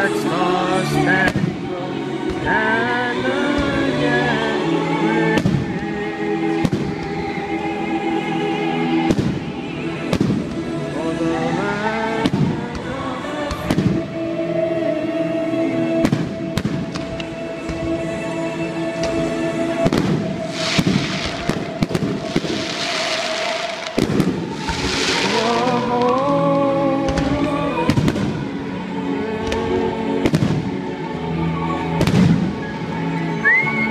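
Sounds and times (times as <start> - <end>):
music with sustained notes: 0.0 - 33.9
crackling firework shells: 19.8 - 28.3
firework shells bursting: 19.9 - 26.3.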